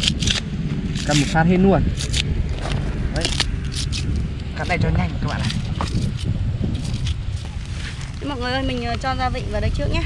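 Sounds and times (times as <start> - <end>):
lemongrass tearing: 0.0 - 8.3
steady low rumble: 0.0 - 10.0.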